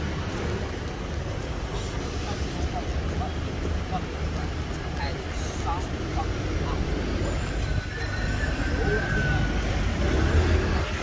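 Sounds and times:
indistinct passers-by voices: 0.0s - 11.0s
road traffic rumble: 0.0s - 11.0s.

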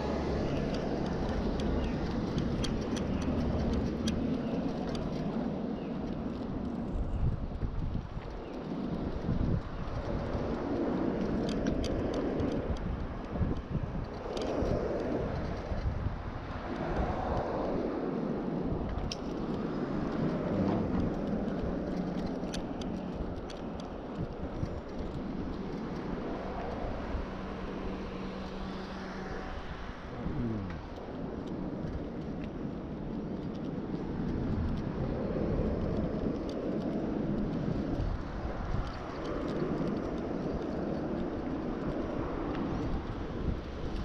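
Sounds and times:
bicycle tyre rumble: 0.0s - 44.0s
bike rattling: 0.0s - 44.0s
road traffic hum: 0.0s - 44.0s
wind buffeting microphone: 0.0s - 44.0s
vehicle passing by: 20.2s - 21.3s, 27.4s - 31.0s.

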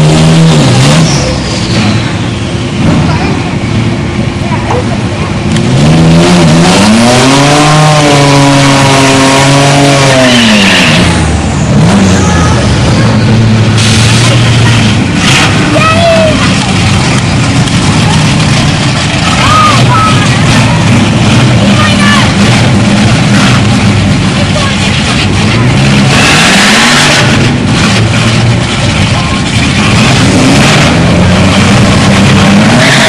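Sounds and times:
racing car engine accelerating: 0.0s - 4.5s, 5.3s - 33.0s
engine running steadily at low revs: 0.0s - 33.0s.

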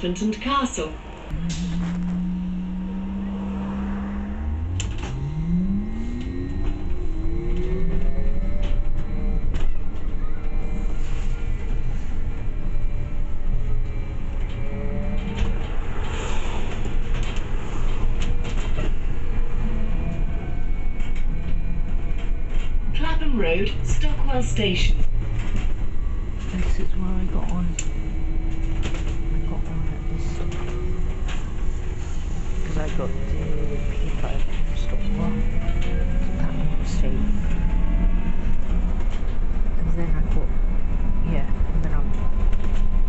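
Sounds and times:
bus drive whine rising: 0.0s - 43.0s
recorded onboard announcement: 0.0s - 43.0s
road and cabin rumble: 0.0s - 43.0s.

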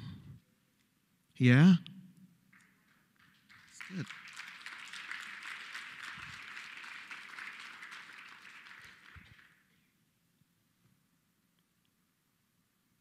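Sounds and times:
audience applause: 2.6s - 9.7s.

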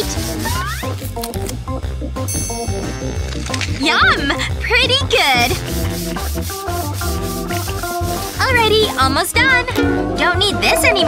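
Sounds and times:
broom sweeping hard floor: 0.0s - 1.0s, 4.9s - 9.3s
background music: 0.0s - 11.0s.

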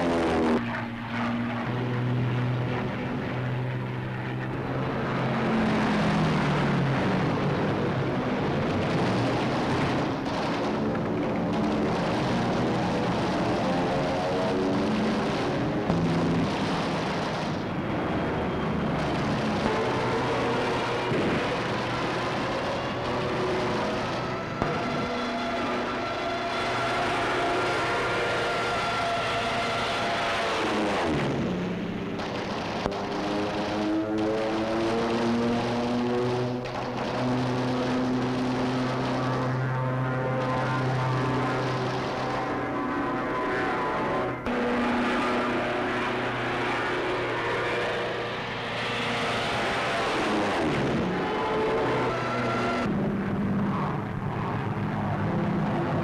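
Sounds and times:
propeller plane engines droning: 0.0s - 56.0s.

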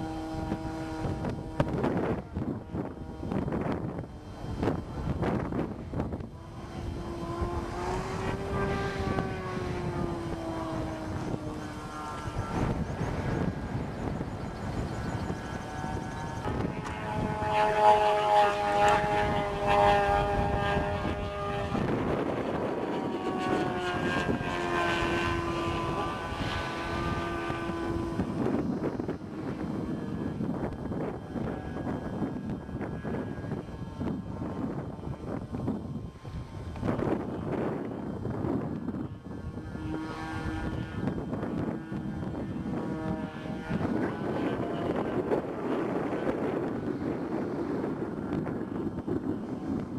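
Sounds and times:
model airplane engine flying overhead: 0.0s - 49.9s.

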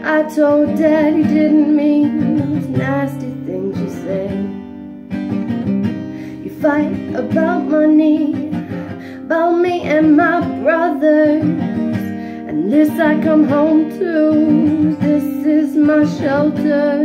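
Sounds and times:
woman singing: 0.0s - 4.9s, 6.2s - 17.0s
acoustic guitar strumming: 0.0s - 17.0s.

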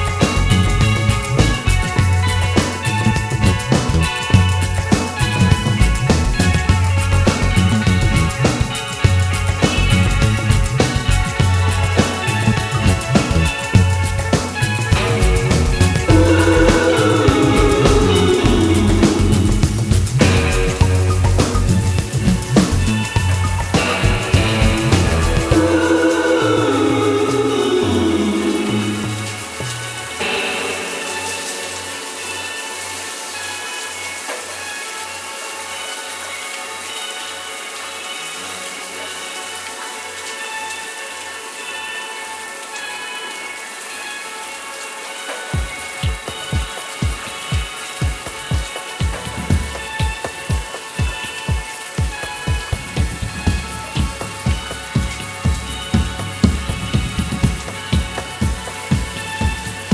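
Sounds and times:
synth and guitar tones: 0.0s - 35.1s
pulsing bass note: 15.0s - 27.1s
kick drum beat: 19.4s - 25.6s, 45.6s - 59.9s.

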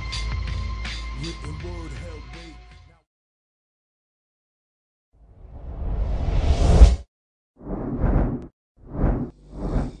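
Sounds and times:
whoosh sound effects: 7.6s - 10.0s.

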